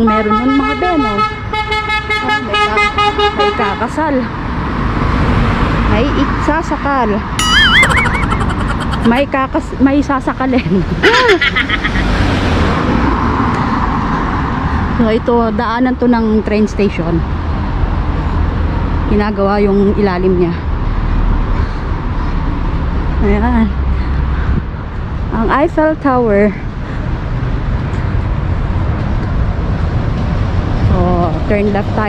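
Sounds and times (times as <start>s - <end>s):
road traffic rumble: 0.0s - 32.0s
cars driving past: 0.9s - 32.0s
high-pitched warbling call: 7.4s - 9.2s.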